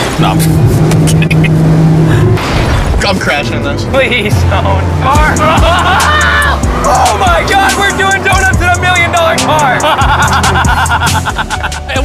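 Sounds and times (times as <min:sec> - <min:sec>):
sports car engine at speed: 0:00.0 - 0:11.8
person laughing: 0:00.9 - 0:01.6, 0:05.4 - 0:06.4, 0:09.5 - 0:12.0.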